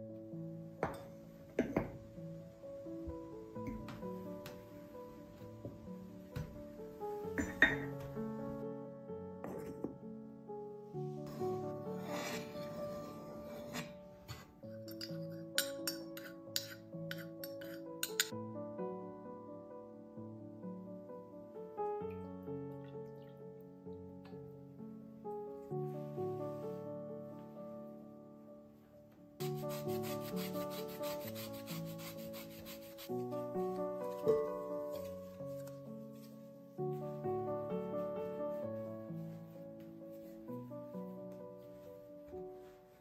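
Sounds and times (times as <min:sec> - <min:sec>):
gentle background music: 0:00.0 - 0:43.0
spoon clinking on ceramic cup: 0:14.8 - 0:18.3.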